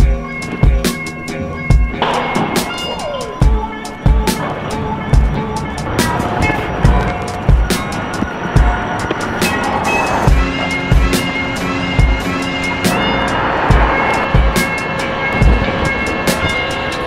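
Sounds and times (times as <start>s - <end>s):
background music with drum beat: 0.0s - 4.5s, 5.1s - 13.1s, 13.7s - 17.0s
held chords: 0.0s - 17.0s.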